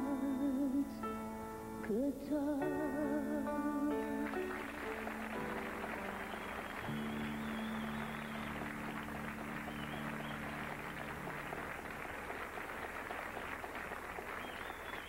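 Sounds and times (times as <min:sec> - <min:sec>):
studio audience applauding: 0:04.2 - 0:15.0.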